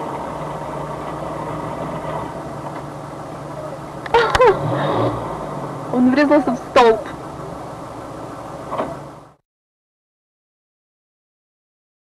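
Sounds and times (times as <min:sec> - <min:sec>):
car interior road noise: 0:00.0 - 0:09.4.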